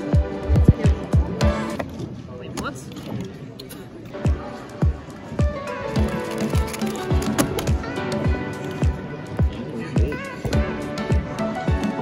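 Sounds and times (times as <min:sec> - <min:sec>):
background music with kick drum: 0:00.0 - 0:01.9, 0:04.1 - 0:12.0.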